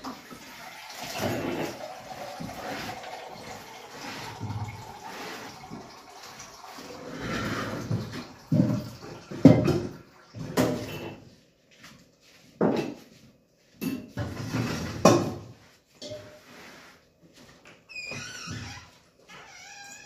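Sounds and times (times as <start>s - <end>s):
water running into a steel sink: 0.0s - 11.2s.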